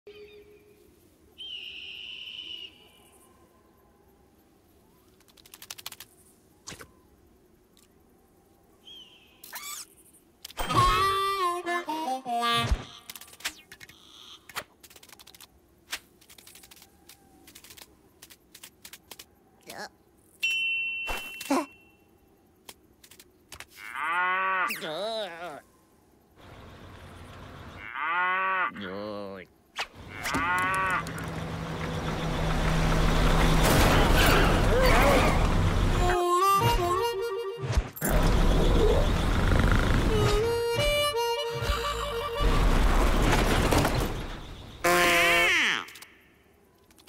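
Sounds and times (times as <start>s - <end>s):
faint desert ambience: 0.1s - 47.0s
high whistle-like call: 1.4s - 2.9s, 20.4s - 22.0s.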